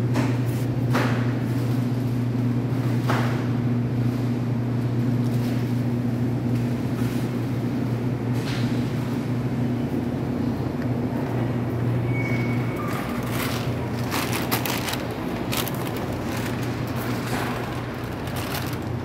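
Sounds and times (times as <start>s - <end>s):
low electrical hum of freezers: 0.0s - 19.0s.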